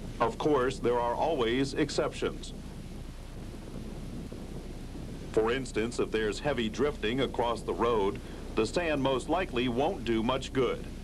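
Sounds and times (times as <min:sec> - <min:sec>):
low hum: 0:00.0 - 0:11.0
rushing wind: 0:00.0 - 0:11.0.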